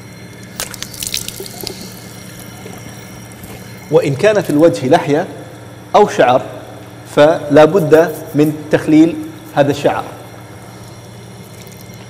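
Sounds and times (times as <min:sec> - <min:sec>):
tap water running into basin: 0:00.4 - 0:03.8
water splashing from face washing: 0:00.5 - 0:03.8, 0:11.4 - 0:12.0.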